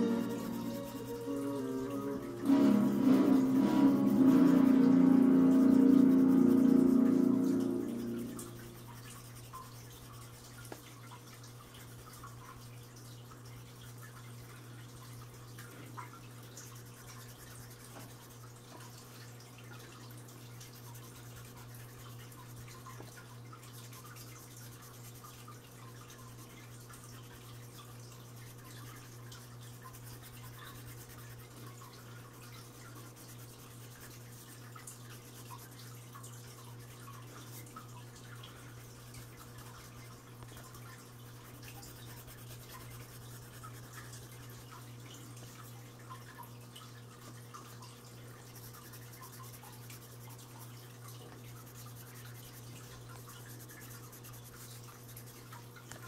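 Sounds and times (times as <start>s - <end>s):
pencil scratching on paper: 51.6s - 55.4s.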